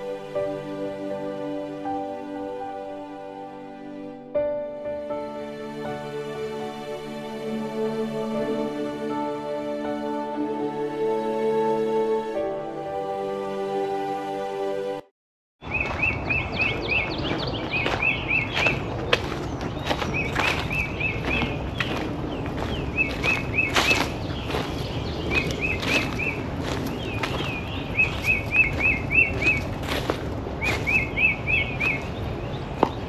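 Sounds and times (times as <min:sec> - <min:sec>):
songbird singing: 0:15.6 - 0:33.0
footsteps on dry ground: 0:15.7 - 0:33.0.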